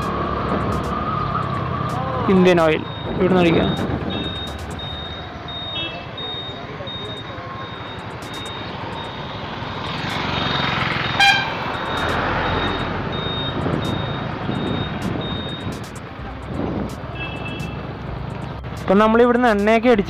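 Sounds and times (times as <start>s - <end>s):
scooter engine: 0.0s - 18.9s
faint high beep: 2.8s - 9.5s, 10.4s - 15.7s
horn toot: 11.1s - 12.7s.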